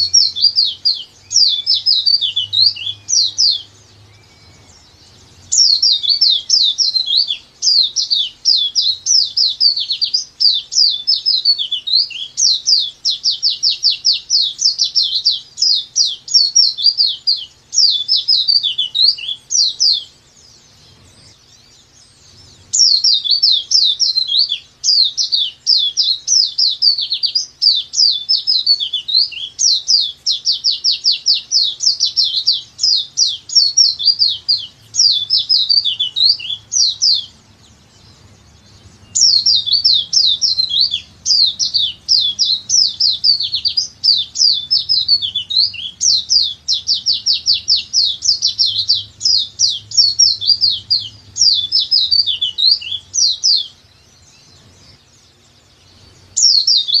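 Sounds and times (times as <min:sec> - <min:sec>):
bird singing rapid chirps: 0:00.0 - 0:57.0.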